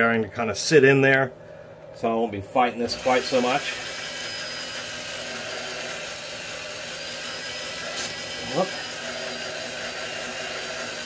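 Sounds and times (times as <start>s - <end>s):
electric drill running: 2.8s - 11.0s
file scraping spinning metal: 2.9s - 11.0s.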